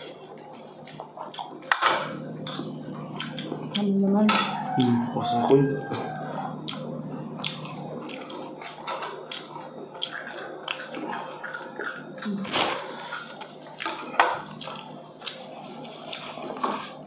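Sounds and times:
steady low hum: 0.0 - 17.0
person humming: 2.4 - 6.8, 12.2 - 13.1.

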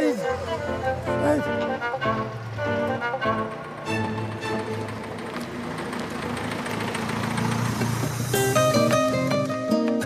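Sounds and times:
background music: 0.0 - 5.9, 8.2 - 10.0
car engine passing by: 0.0 - 9.7.

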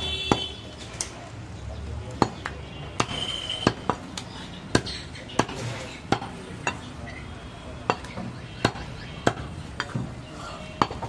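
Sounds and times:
knife chopping ribs on wood block: 2.2 - 6.3.

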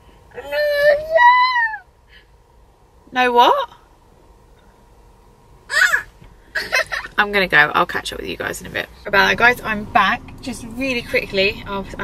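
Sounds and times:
toddler crying: 5.7 - 6.1.

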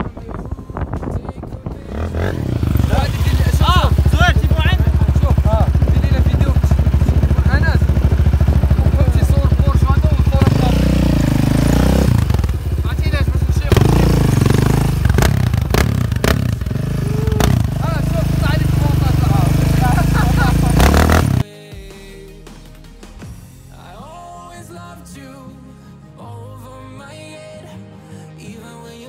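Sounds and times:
quad engine idling and revving: 0.0 - 21.5.

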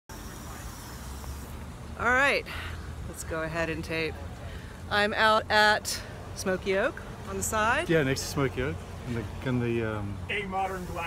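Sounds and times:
road traffic rumble: 0.1 - 11.0.

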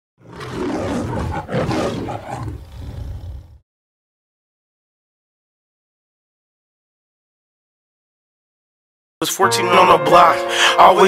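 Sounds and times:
lion roaring: 0.2 - 3.6.

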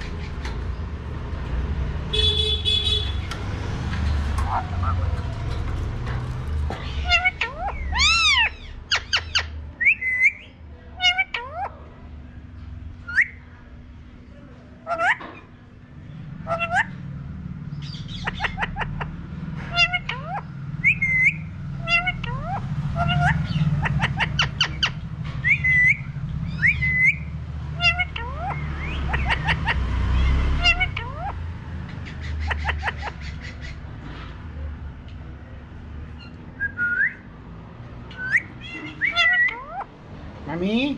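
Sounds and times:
parakeet whistling and squawking: 4.2 - 5.2, 6.8 - 11.8, 14.9 - 15.2, 16.4 - 17.0, 17.7 - 33.9, 38.0 - 40.0.

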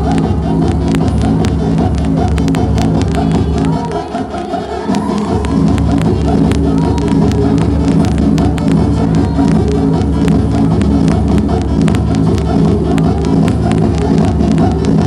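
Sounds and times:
electronic dance music: 0.0 - 15.0.

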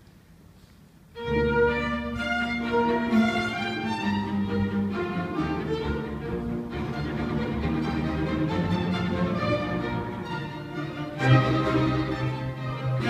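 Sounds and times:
string ensemble playing: 1.1 - 13.0.

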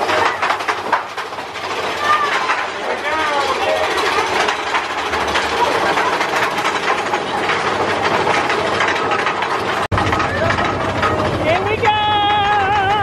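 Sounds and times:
roller coaster clattering on track: 0.0 - 13.0
riders shouting: 11.5 - 13.0.

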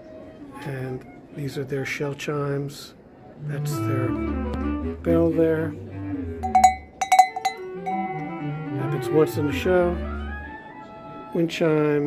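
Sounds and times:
large bell struck by wooden clapper: 6.4 - 8.2.

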